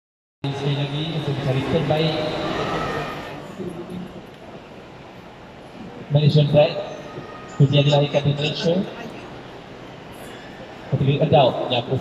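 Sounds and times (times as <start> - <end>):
crowd murmur in large hall: 0.4 - 12.0.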